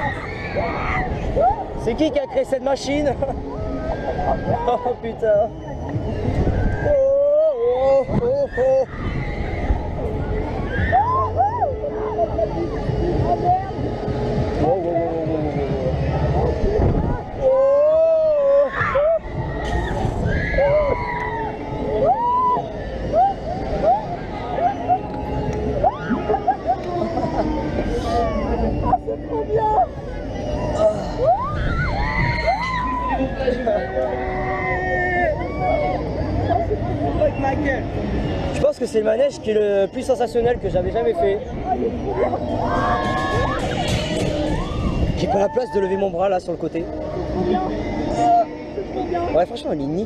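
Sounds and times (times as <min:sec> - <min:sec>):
riders whooping and shouting: 0:00.0 - 0:01.8, 0:03.4 - 0:13.7, 0:15.6 - 0:37.4, 0:41.7 - 0:46.0
wind rush on microphone: 0:15.4 - 0:17.6, 0:40.5 - 0:45.6
wind on camera microphone: 0:16.4 - 0:17.4.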